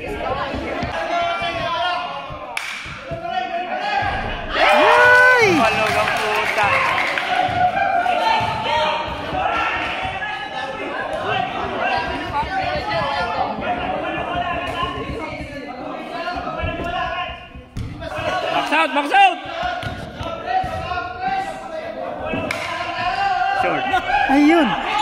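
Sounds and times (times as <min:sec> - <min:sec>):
crowd chatter in a hall: 0:00.0 - 0:25.0.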